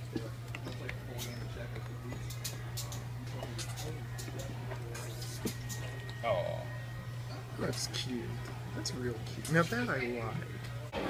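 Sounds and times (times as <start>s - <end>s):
faint background voices: 0.0s - 11.0s
steady low hum: 0.0s - 11.0s.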